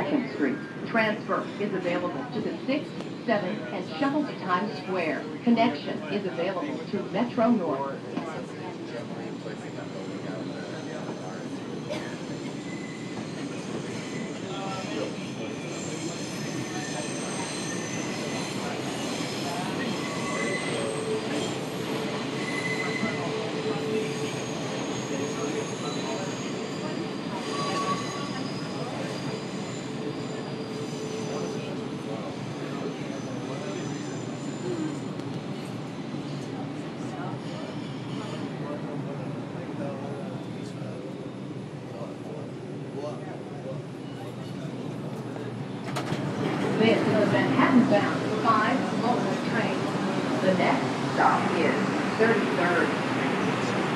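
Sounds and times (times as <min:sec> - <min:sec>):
subway wheels rumbling: 0:00.0 - 0:53.9
high wheel squeals: 0:12.5 - 0:21.8, 0:22.4 - 0:31.8.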